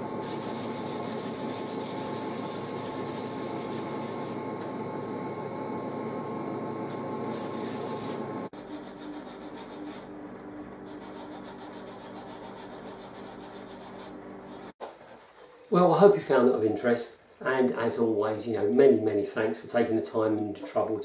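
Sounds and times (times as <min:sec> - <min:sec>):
sandpaper rubbing on wood: 0:00.2 - 0:04.4, 0:07.3 - 0:10.1, 0:10.9 - 0:14.8.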